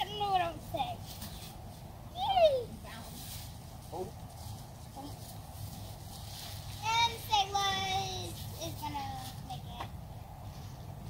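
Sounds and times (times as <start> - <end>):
child's high-pitched voice: 2.1 - 3.1, 6.8 - 9.9.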